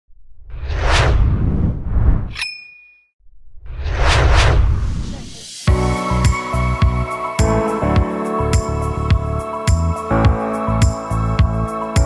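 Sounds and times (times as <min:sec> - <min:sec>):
whooshes: 0:00.2 - 0:02.4, 0:03.3 - 0:05.9
sharp metallic ding: 0:02.4 - 0:03.1.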